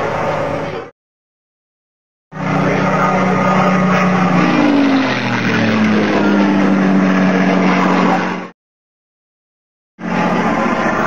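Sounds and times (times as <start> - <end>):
vehicle engine running: 2.4 - 8.5.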